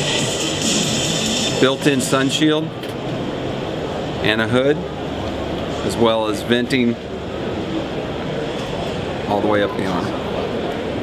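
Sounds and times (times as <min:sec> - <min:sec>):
exhibition hall background noise: 0:00.0 - 0:11.0.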